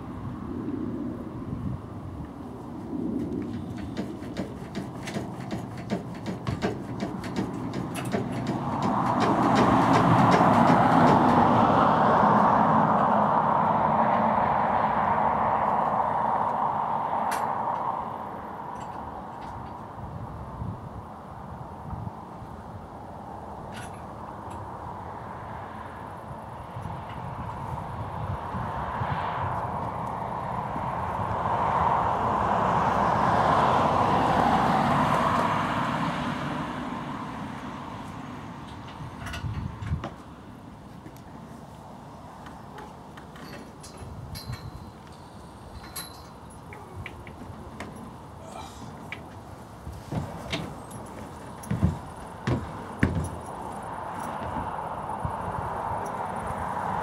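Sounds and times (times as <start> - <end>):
road traffic passing: 0.0 - 57.0.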